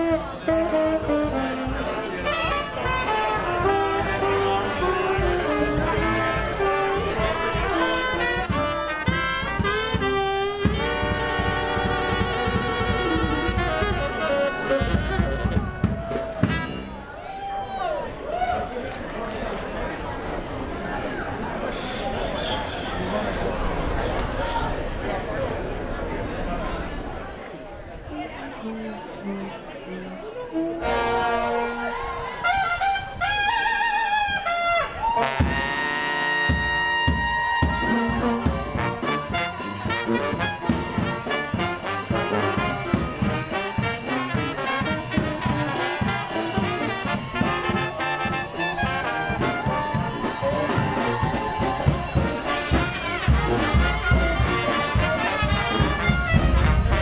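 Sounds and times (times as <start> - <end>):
brass band playing: 0.0 - 17.2, 28.2 - 57.0
crowd chatter: 0.0 - 57.0
bass drum: 8.4 - 16.9, 36.5 - 57.0.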